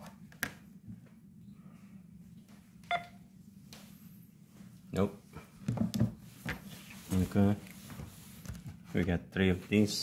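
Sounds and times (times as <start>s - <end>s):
faint low hum: 0.0s - 10.0s
short electronic beep: 2.9s - 3.2s.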